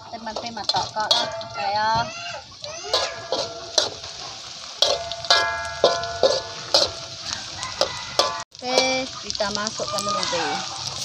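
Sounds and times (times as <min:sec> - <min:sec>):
food sizzling in hot oil: 0:00.0 - 0:11.0
metal spatula scraping wok: 0:00.0 - 0:11.0.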